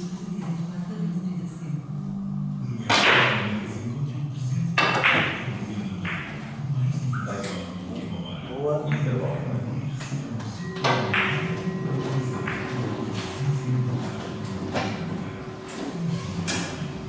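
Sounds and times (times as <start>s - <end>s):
cue striking ball: 2.9s - 3.6s, 4.8s - 6.6s, 10.8s - 13.1s.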